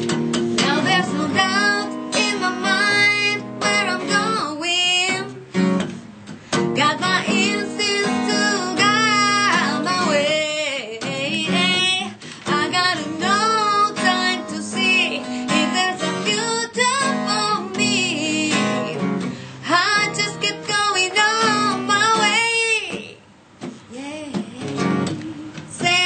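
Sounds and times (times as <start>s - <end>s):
strummed acoustic guitar: 0.0s - 26.0s
woman singing blues: 0.3s - 5.8s, 6.5s - 26.0s.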